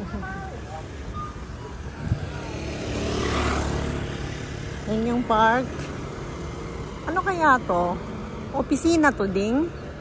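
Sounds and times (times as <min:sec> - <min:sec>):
vehicle passing: 0:00.0 - 0:10.0.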